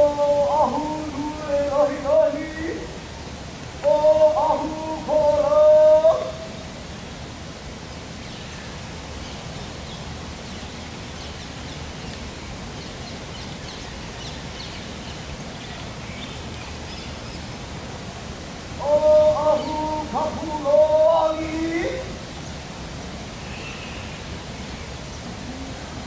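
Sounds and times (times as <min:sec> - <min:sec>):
steady outdoor noise: 0:00.0 - 0:26.0
faint bird chirps: 0:23.4 - 0:24.3.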